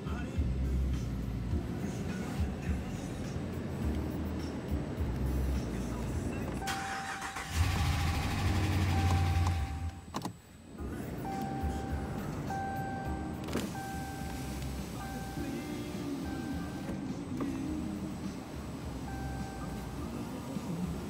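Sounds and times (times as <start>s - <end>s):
truck engine turning over: 5.2s - 21.0s
dashboard warning chime: 6.6s - 7.6s, 8.7s - 10.1s, 11.2s - 17.8s, 19.0s - 20.3s.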